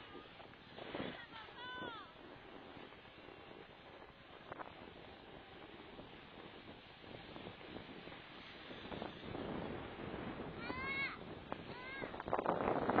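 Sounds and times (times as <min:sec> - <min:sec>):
skis scraping over snow: 0:00.0 - 0:13.0.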